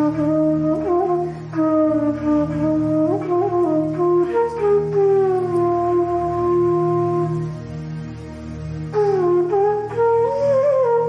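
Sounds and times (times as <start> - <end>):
bamboo flute long note: 0.0 - 11.0
steady low drone: 0.0 - 11.0.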